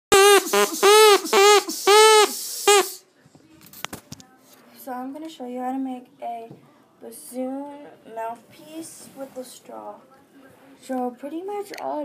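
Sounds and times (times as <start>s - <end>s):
drinking straw reed honks: 0.1s - 3.0s.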